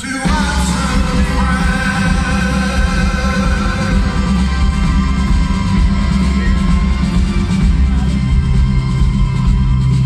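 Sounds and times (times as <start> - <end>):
man singing lead vocal: 0.0 - 6.0
live band playing: 0.0 - 10.0.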